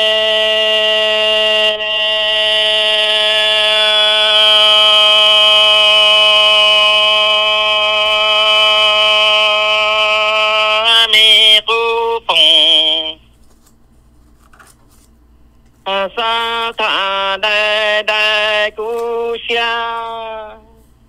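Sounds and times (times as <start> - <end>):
person singing long note: 0.0 - 13.2, 15.9 - 20.8.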